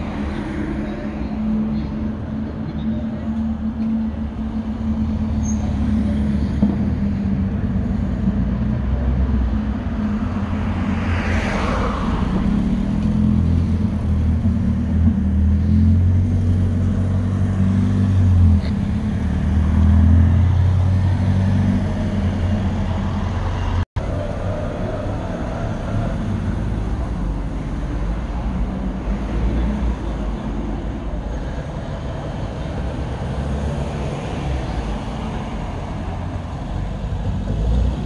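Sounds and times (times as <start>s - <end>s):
rally car engines passing: 0.0s - 38.0s.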